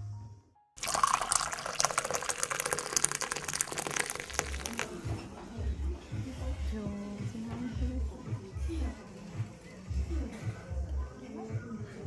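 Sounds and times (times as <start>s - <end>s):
water splashing: 0.8s - 5.0s.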